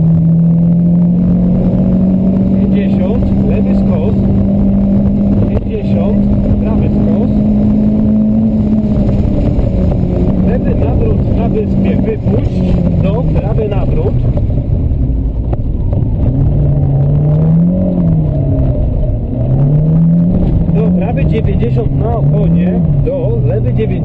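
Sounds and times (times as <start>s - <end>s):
car engine revving under load: 0.0s - 24.0s.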